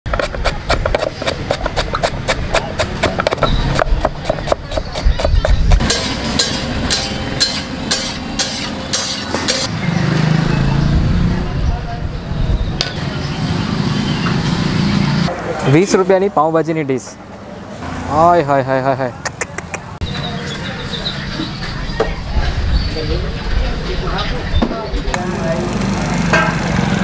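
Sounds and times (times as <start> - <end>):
knife chopping cabbage on wood: 0.1 - 7.2
metal spatula scraping iron pan: 5.8 - 9.7.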